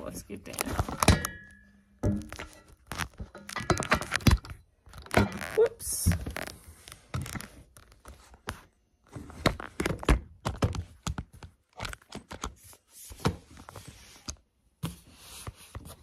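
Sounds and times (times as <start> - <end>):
objects knocking and thunking: 0.4 - 7.7, 9.0 - 12.4.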